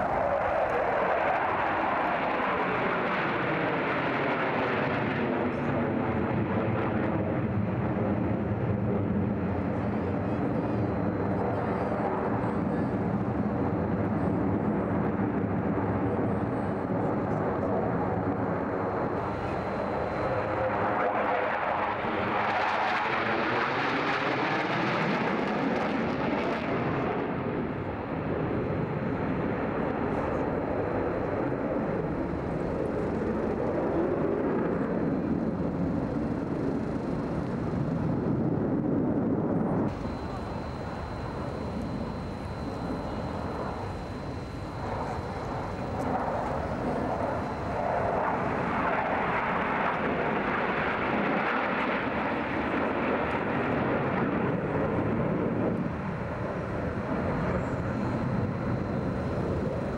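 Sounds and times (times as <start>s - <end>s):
fighter jets flying overhead: 0.0s - 59.9s.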